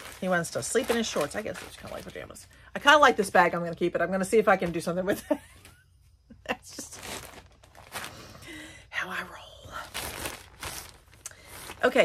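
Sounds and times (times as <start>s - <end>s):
packaging crinkling: 0.0s - 2.4s, 6.8s - 8.5s, 9.7s - 12.0s
woman speaking: 0.0s - 5.4s, 11.8s - 12.0s.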